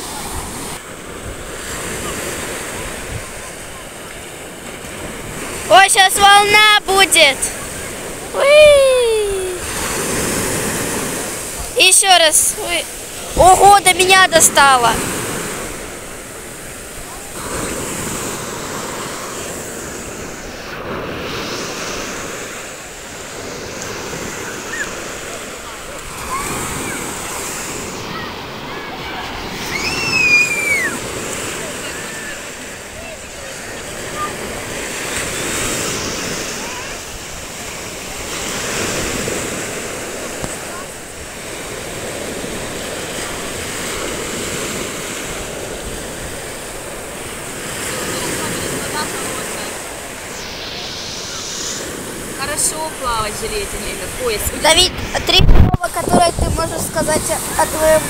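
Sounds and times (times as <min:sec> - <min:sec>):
surf breaking on beach: 0:00.0 - 0:58.0
voices in background: 0:24.3 - 0:38.3
brief high squeal: 0:29.7 - 0:31.0.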